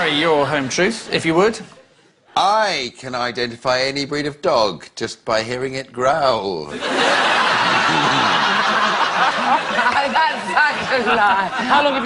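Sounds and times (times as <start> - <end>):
audience laughing: 6.7 - 12.0.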